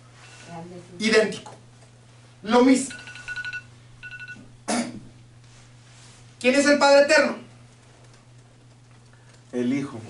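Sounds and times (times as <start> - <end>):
person coughing: 4.6 - 5.1.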